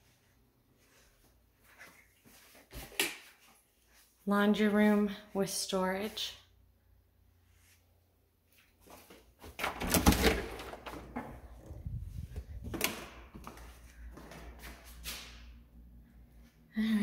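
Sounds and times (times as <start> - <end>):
door being unlatched and opened: 9.6 - 11.7.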